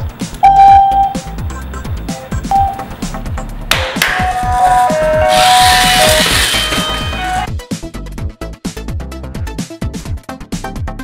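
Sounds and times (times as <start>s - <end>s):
electronic music with kick drum: 0.0s - 5.3s
loud held electronic tone: 0.4s - 3.0s, 4.1s - 7.5s.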